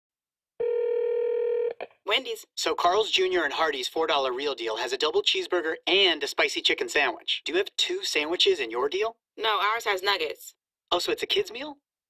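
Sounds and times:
telephone ringback tone: 0.6 - 1.8.

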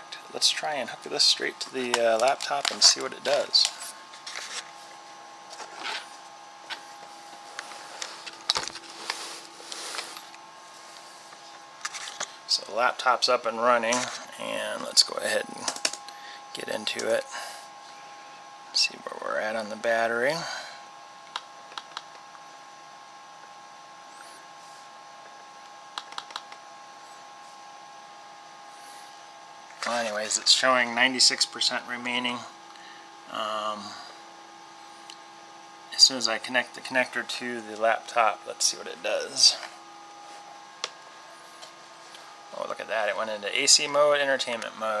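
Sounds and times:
faint electronic whine: 0.0 - 45.0
faint steady hum: 0.0 - 45.0
laptop whirring hiss: 0.0 - 45.0.

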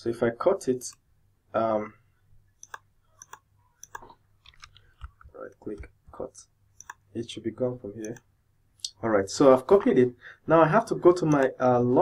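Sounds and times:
computer mouse clicks: 2.6 - 5.9, 6.8 - 7.1, 8.0 - 8.3.

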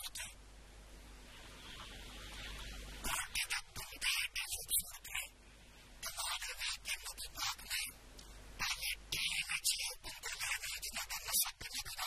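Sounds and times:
person speaking: 0.0 - 0.4, 3.0 - 5.4, 6.0 - 8.0, 8.6 - 12.0
faint steady hiss: 0.0 - 12.0.

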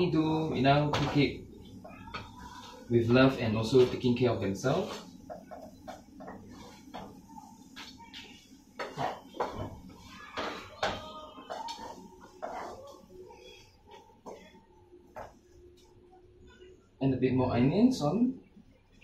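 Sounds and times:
wooden spatula scraping a pan: 8.8 - 13.6.

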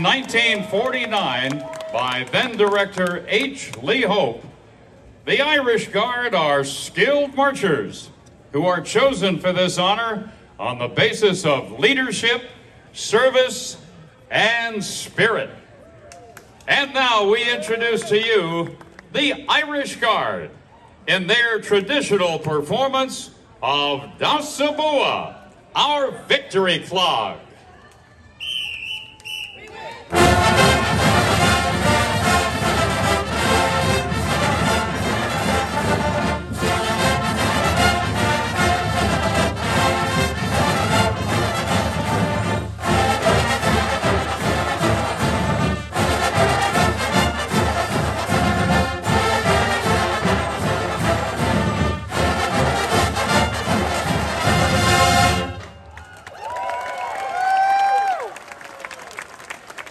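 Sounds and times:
crowd cheering and whistling: 0.0 - 2.1, 28.4 - 30.1, 55.7 - 59.3
brass marching band playing: 30.1 - 56.0.

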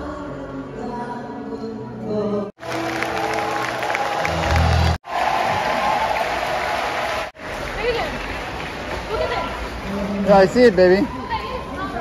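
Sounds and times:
live concert music: 2.6 - 5.0
crowd cheering and applauding: 2.6 - 9.3.

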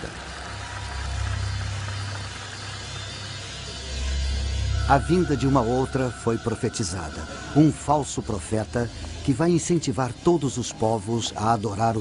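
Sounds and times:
low rumbling drone: 0.0 - 10.7.

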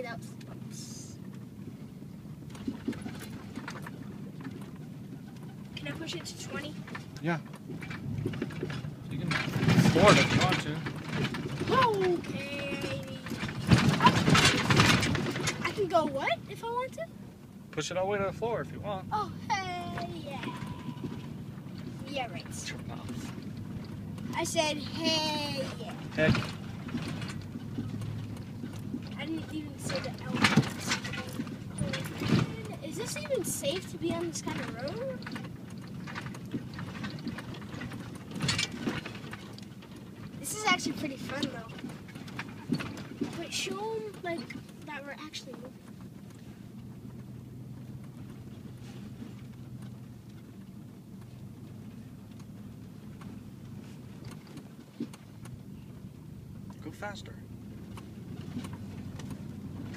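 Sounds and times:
engine and road rumble: 0.0 - 59.9
light knocks and rattles: 0.0 - 59.9.

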